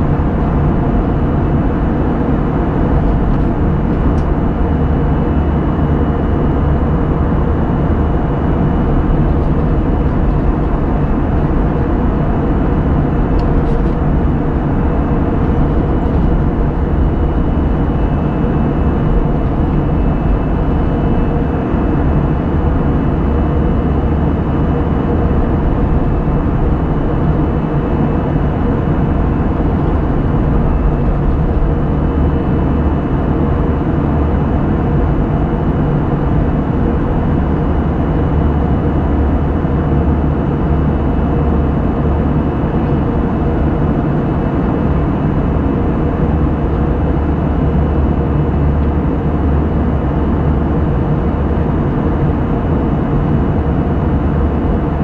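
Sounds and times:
airplane cabin engine noise: 0.0 - 55.0
faint steady whine: 0.0 - 55.0.

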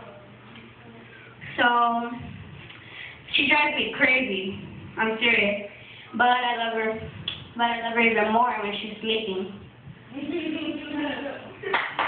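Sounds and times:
woman speaking: 1.4 - 2.4, 3.3 - 9.7.

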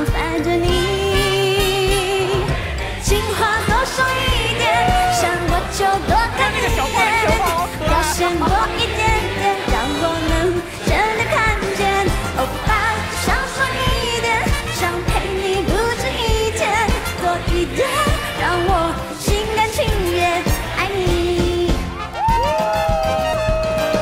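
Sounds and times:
woman singing into microphone: 0.0 - 21.9
upbeat pop backing music: 0.0 - 24.0.

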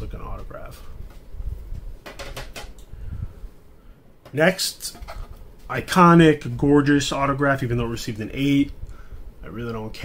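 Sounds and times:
plastic clicks and knocks: 2.0 - 2.8.

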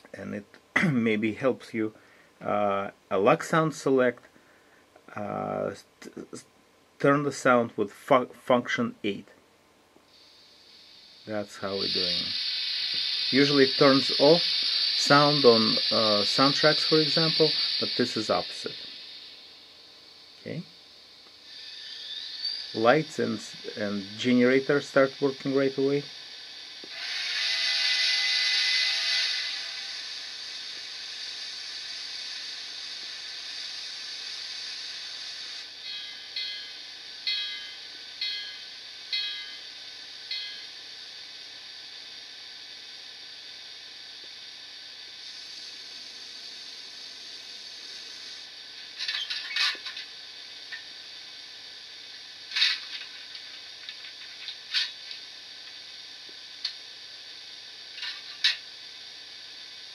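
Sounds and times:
hiss with steady tones: 0.0 - 59.9
steady steam generator hiss: 0.0 - 59.9
even pulses: 10.2 - 20.7, 21.4 - 39.6.

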